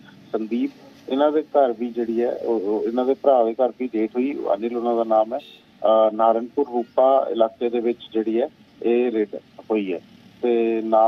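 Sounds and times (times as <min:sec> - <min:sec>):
man talking over telephone: 0:00.2 - 0:11.0.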